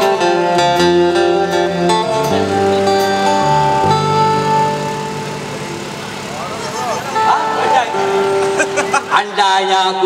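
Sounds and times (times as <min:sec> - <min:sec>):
acoustic guitar chord: 0:00.0 - 0:10.0.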